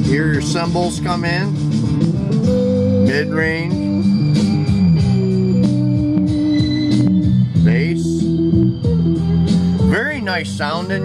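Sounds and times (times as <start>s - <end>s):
radio music through speakers: 6.6s - 8.3s.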